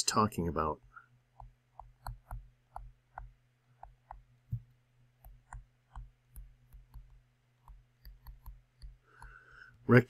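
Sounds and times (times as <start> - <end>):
faint low hum: 0.0 - 10.0
stylus tapping on tablet: 1.3 - 9.4.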